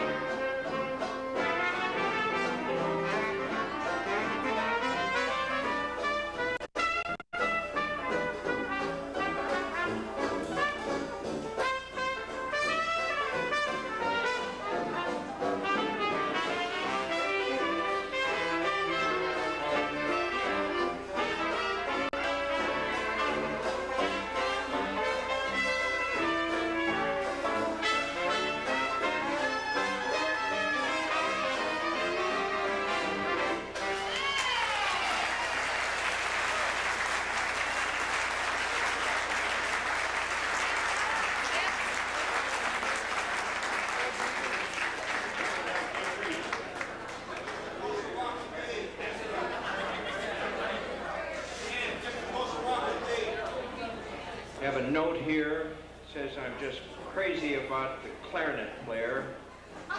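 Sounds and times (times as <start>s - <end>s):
jazz band playing: 0.0s - 34.6s, 35.3s - 47.8s.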